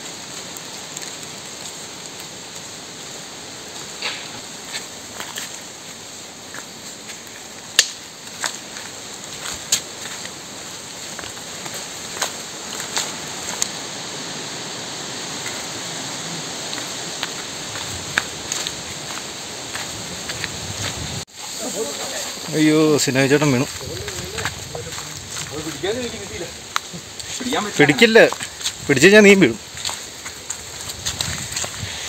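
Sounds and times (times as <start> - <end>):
steady hiss: 0.0 - 32.0
footsteps crunching on dry leaves: 3.7 - 32.0
twig snapping: 7.8 - 8.0.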